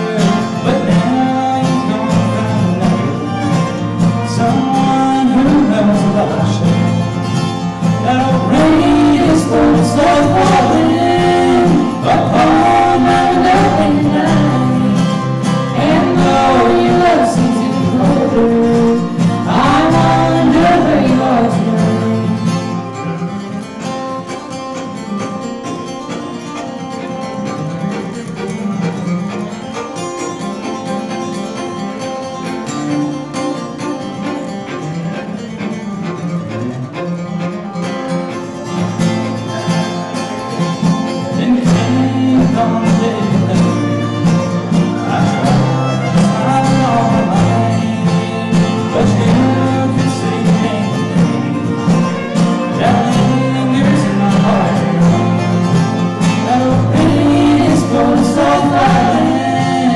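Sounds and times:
man singing: 0:00.0 - 0:23.1, 0:39.5 - 0:59.9
bowed fiddle melody: 0:00.0 - 0:59.9
strummed acoustic guitar: 0:00.0 - 0:59.9.

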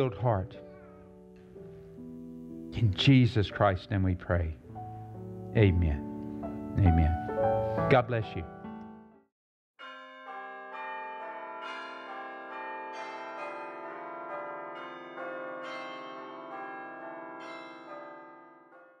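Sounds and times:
bells struck ringing: 0:09.8 - 0:19.0.

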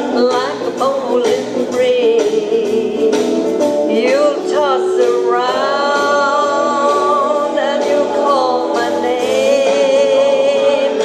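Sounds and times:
woman singing country song: 0:00.0 - 0:11.0.

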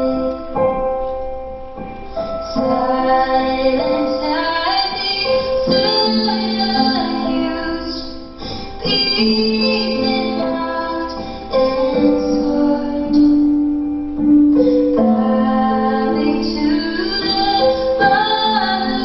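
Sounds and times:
woman singing slow song: 0:00.0 - 0:01.1, 0:02.4 - 0:19.0.

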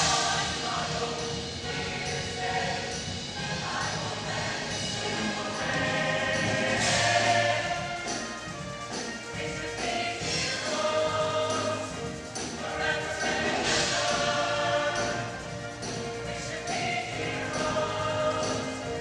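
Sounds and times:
choir singing in harmony: 0:00.0 - 0:19.0
instrumental accompaniment: 0:00.0 - 0:19.0.

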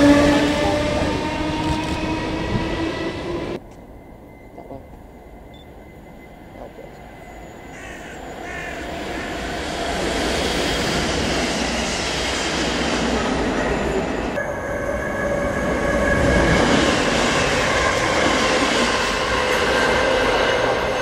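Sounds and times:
train passing at speed: 0:00.0 - 0:21.0.

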